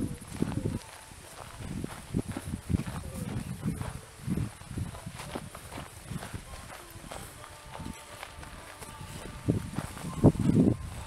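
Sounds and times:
footsteps on gravelly dirt trail: 0.0s - 11.0s.

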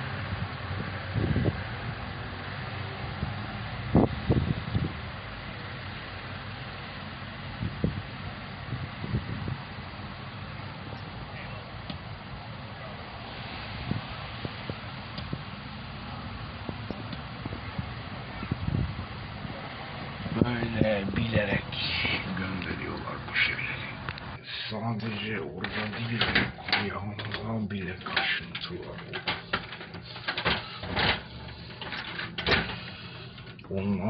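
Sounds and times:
outdoor background noise: 0.0s - 34.0s.

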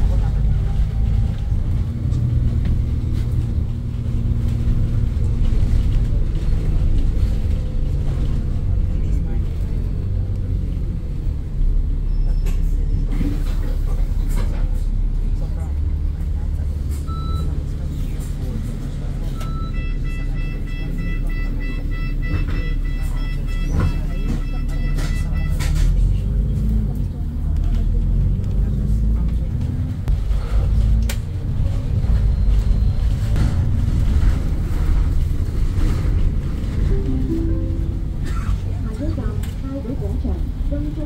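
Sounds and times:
bus engine and road rumble: 0.0s - 41.0s.

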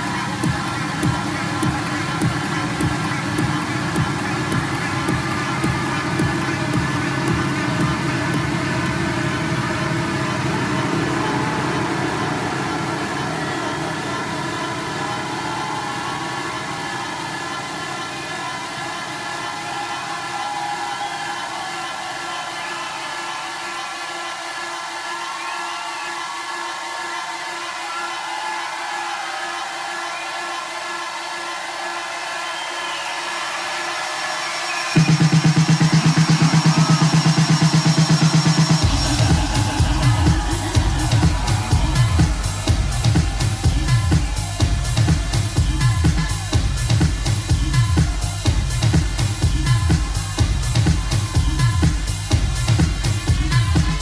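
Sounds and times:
bass: 0.0s - 11.8s, 35.0s - 54.0s.

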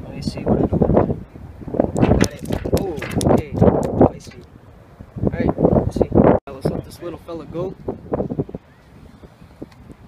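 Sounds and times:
fish slapping on deck: 2.0s - 4.0s.

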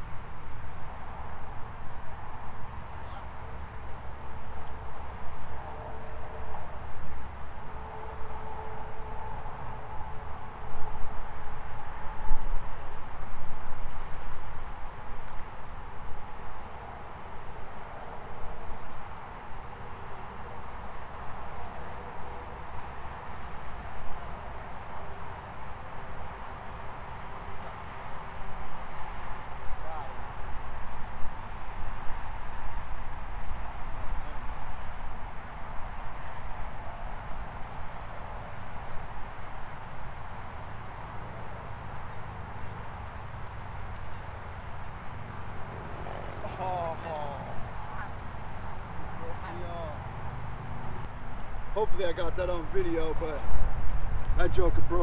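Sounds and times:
gusty wind on microphone: 0.0s - 49.2s, 50.0s - 55.0s.

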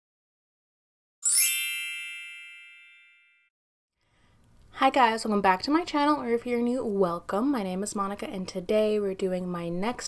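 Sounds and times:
shimmering chime sweep: 1.2s - 3.4s
ringing bell-like tones: 1.2s - 3.5s.

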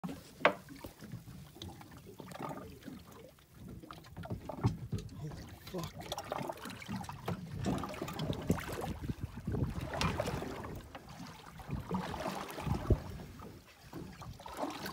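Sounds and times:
water splashing against boat hull: 0.0s - 14.9s.

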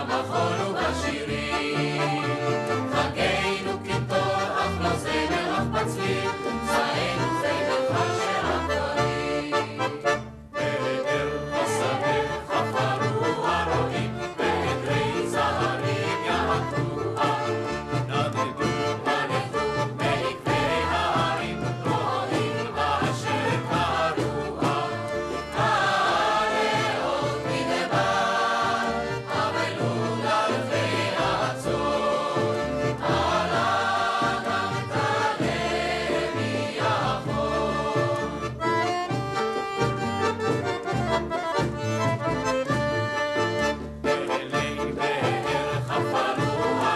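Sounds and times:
mixed choir singing in unison: 0.0s - 39.2s, 44.0s - 46.9s
low instrumental accompaniment: 0.0s - 46.9s.

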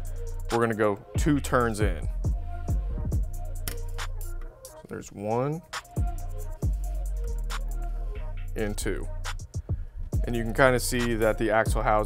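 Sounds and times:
bass line: 0.0s - 4.4s, 6.0s - 12.0s.

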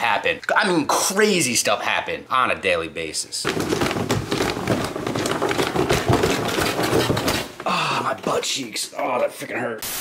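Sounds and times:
clothing and camera rustle: 3.4s - 7.6s
thumps on wooden stairs: 3.5s - 7.8s.

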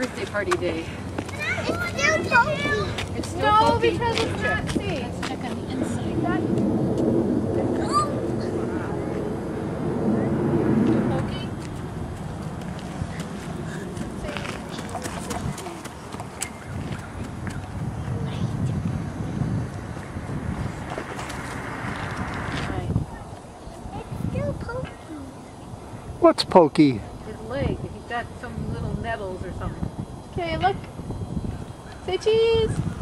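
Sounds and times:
indistinct talking: 0.0s - 32.8s.

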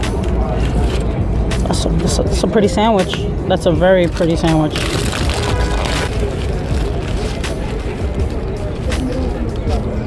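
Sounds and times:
city street traffic rumble: 0.0s - 10.0s.

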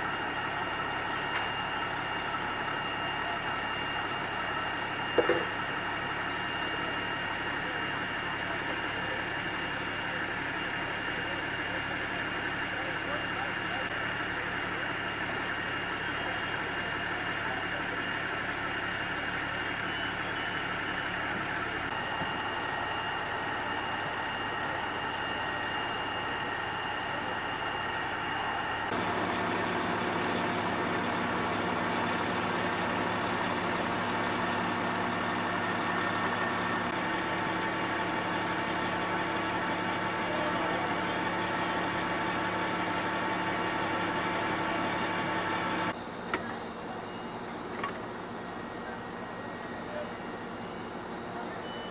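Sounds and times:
constant whining tones: 0.0s - 51.9s
fire engines idling: 0.0s - 51.9s.

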